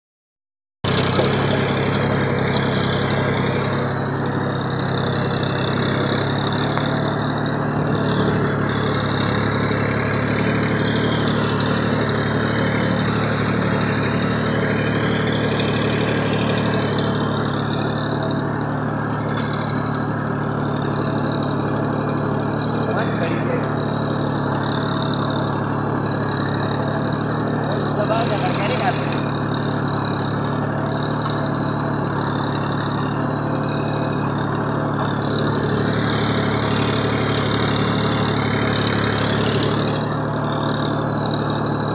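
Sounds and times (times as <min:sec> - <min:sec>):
tractor diesel engine under load: 0:00.8 - 0:41.9.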